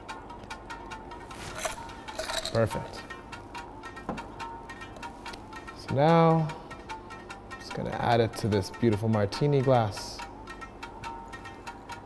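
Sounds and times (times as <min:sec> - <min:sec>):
light ticking beat: 0:00.0 - 0:01.3, 0:02.7 - 0:12.0
soft background music: 0:00.0 - 0:12.0.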